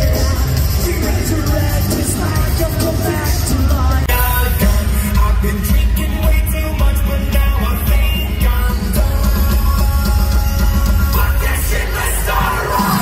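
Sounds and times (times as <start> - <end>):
live rock band playing: 0.0 - 13.0
vocalist singing: 0.0 - 13.0.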